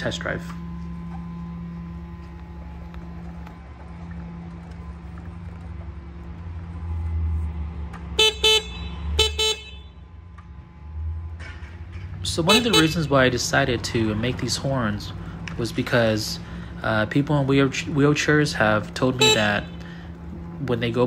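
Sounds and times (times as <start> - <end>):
low steady rumble: 0.0 - 21.0
electric horn toots: 8.1 - 10.2, 12.3 - 13.4, 19.0 - 20.1.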